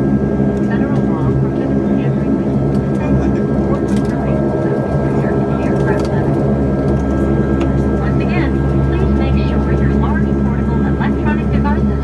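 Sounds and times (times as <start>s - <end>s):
low propeller drone: 0.0s - 12.0s
thin steady engine whine: 0.0s - 12.0s.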